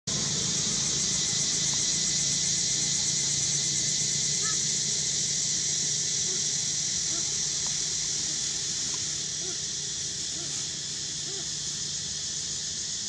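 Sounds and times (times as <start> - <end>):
high-pitched insect chorus: 0.1 - 13.0.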